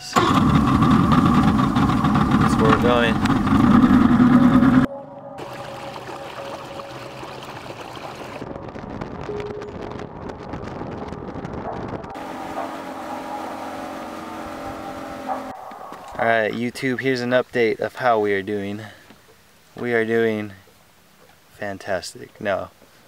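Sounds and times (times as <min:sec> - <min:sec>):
boat motor running: 0:00.2 - 0:16.1.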